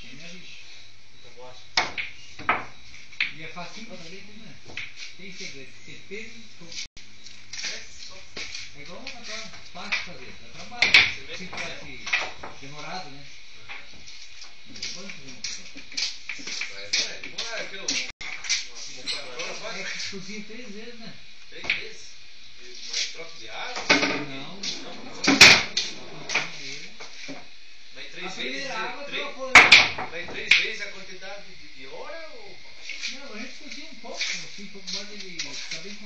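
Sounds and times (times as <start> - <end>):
steady hiss: 0.0 - 36.0
pool balls clacking: 1.8 - 3.4, 9.9 - 12.6, 23.8 - 26.6, 29.5 - 30.8.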